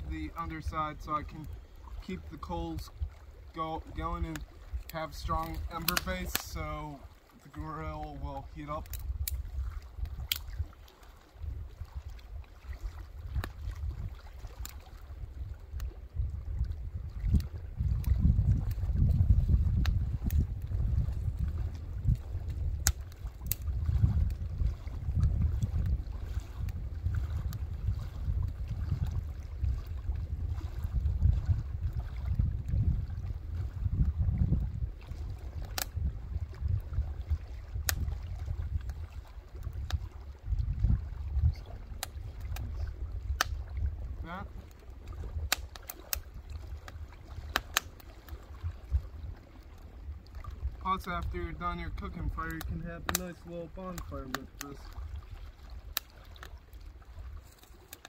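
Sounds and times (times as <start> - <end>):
wood fire crackling: 0.0 - 9.4, 19.7 - 23.7, 35.6 - 35.9, 44.5 - 48.1, 50.8 - 54.9
wind buffeting microphone: 0.0 - 57.9.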